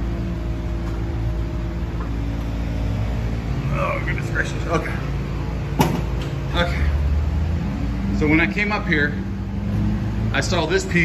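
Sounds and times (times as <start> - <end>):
car wash machinery humming: 0.0 - 11.0.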